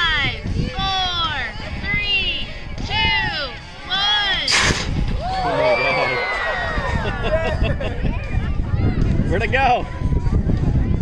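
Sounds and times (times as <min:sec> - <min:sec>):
compressed air cannon blast: 0:04.5 - 0:05.1
people shouting: 0:05.2 - 0:07.0.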